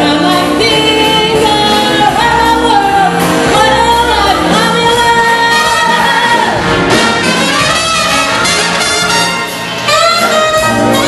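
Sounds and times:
woman singing: 0:00.0 - 0:07.1
swing big band playing: 0:00.0 - 0:11.0.

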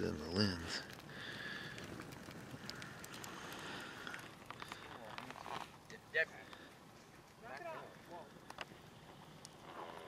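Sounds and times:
sharp fire pops: 0:00.0 - 0:06.2
fire crackling in metal barrel: 0:00.0 - 0:10.0.

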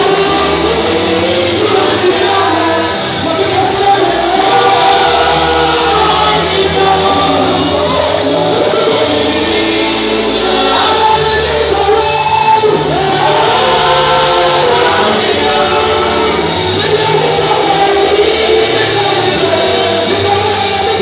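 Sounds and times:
gospel group singing: 0:00.0 - 0:21.0
long held bass notes: 0:00.0 - 0:21.0.

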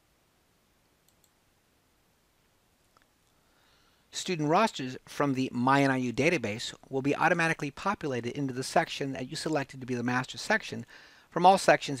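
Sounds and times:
computer mouse click: 0:01.0 - 0:01.4.

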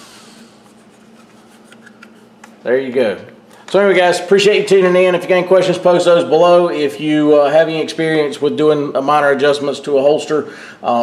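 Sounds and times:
steady low hum: 0:00.0 - 0:11.0
hands rubbing a holster: 0:00.5 - 0:02.4.

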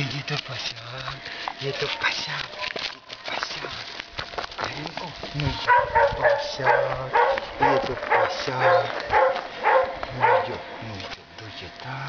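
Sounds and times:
dog scuffling and patting: 0:01.7 - 0:10.4.

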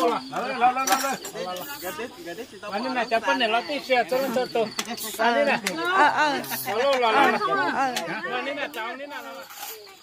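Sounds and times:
insect trill: 0:00.0 - 0:10.0
people talking: 0:00.0 - 0:10.0.

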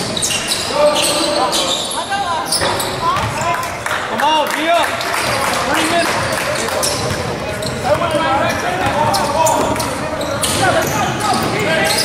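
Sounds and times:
sneakers squeaking on court: 0:00.0 - 0:03.6, 0:05.2 - 0:12.0
voices in reverberant hall: 0:00.0 - 0:12.0
basketball bouncing: 0:02.7 - 0:03.4.

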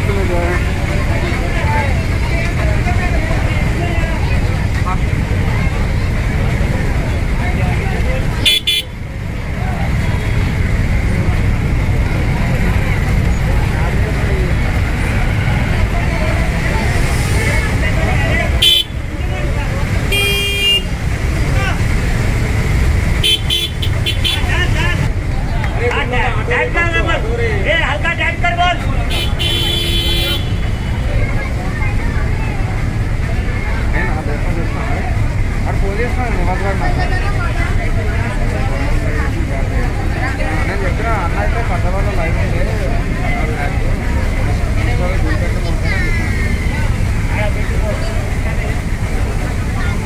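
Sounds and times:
crowd chatter: 0:00.0 - 0:50.0
vehicles passing: 0:00.0 - 0:50.0
vehicle horn: 0:08.4 - 0:09.0, 0:18.6 - 0:19.0, 0:20.1 - 0:21.0, 0:23.2 - 0:24.5, 0:29.1 - 0:31.0.

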